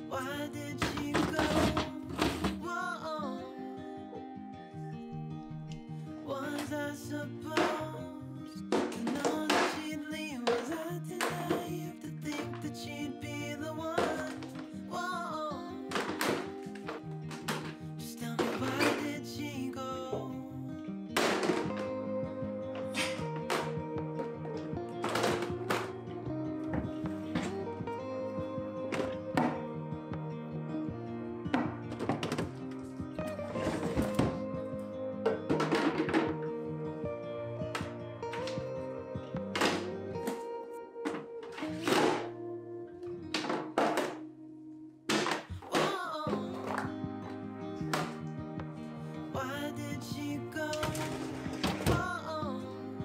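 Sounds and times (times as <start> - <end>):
background song: 0.0 - 53.0
plastic containers knocking: 0.8 - 2.7, 8.6 - 12.7, 14.0 - 14.7, 15.9 - 19.2, 21.2 - 22.0, 22.8 - 26.0, 28.9 - 29.7, 31.5 - 34.5, 35.2 - 36.4, 39.5 - 40.4, 43.3 - 44.2, 45.1 - 47.0, 47.8 - 48.2, 50.7 - 52.1.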